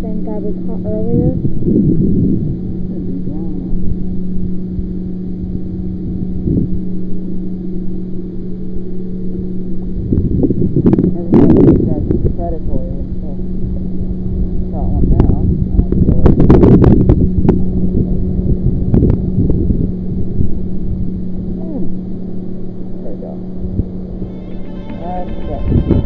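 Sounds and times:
motorboat engine hum: 0.0s - 26.0s
wind rumble on microphone: 0.0s - 26.0s.

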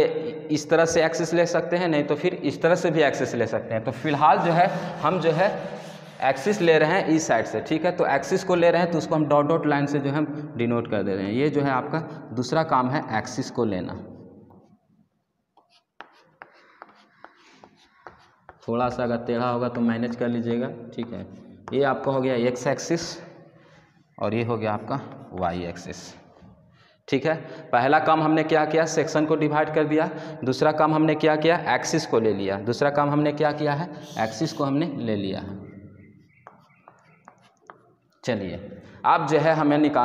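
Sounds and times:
chalk strokes on chalkboard: 4.0s - 7.0s, 15.6s - 18.7s, 36.4s - 37.9s.

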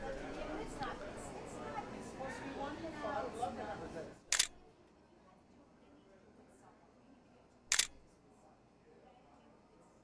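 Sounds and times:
camera shutter click: 4.3s - 4.6s, 7.7s - 8.0s.

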